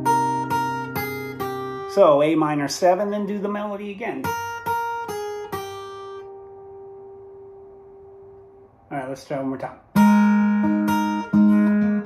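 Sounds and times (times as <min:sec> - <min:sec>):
acoustic guitar note ringing: 0:00.0 - 0:08.9, 0:09.8 - 0:12.0.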